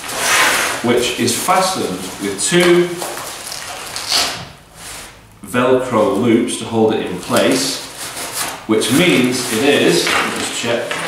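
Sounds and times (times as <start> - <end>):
scratchy rasp: 0.0 - 2.3, 7.2 - 11.0
nylon fabric and velcro rustling: 0.0 - 5.1, 7.2 - 10.9.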